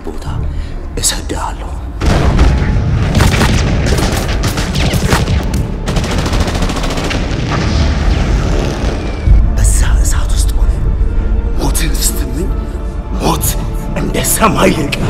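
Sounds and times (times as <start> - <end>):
explosions: 2.0 - 9.5.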